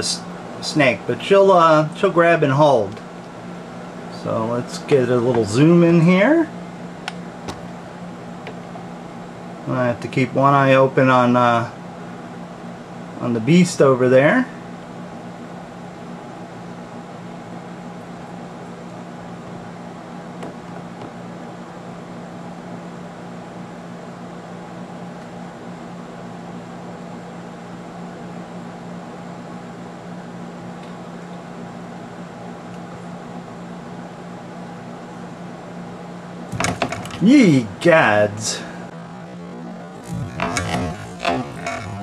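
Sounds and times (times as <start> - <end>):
steady machine hum: 0.0 - 42.0.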